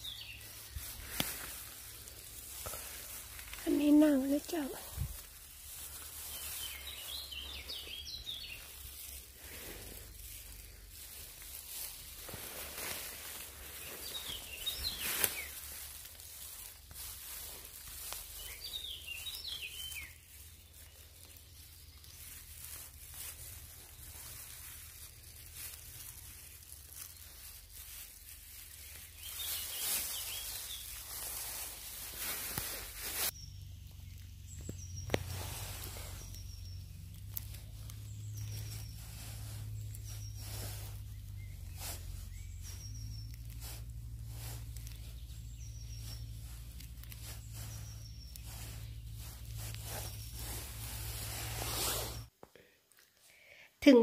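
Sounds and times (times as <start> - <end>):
birds chirping: 0.0 - 52.3
mushrooms snapping off branch: 0.9 - 3.6, 34.6 - 35.3.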